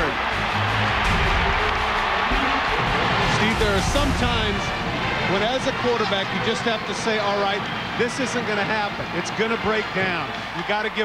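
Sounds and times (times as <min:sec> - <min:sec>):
music: 0:00.0 - 0:10.7
stadium crowd roar: 0:00.0 - 0:11.0.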